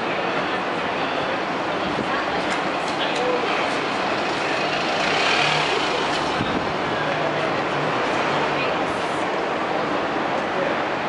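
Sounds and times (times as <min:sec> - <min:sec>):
passers-by talking: 0:00.0 - 0:11.0
traffic noise: 0:00.0 - 0:11.0.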